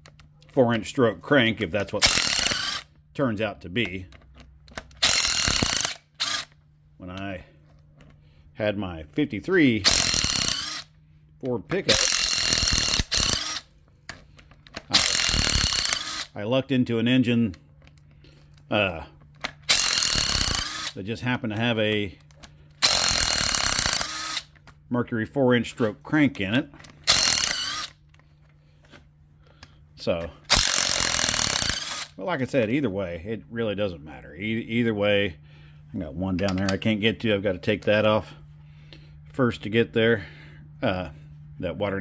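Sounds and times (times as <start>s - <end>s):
impact wrench bursts: 1.9s - 3.0s, 4.8s - 6.6s, 9.8s - 11.0s, 11.8s - 13.8s, 14.5s - 16.4s, 19.4s - 21.0s, 22.8s - 24.6s, 26.9s - 28.0s, 30.4s - 32.2s.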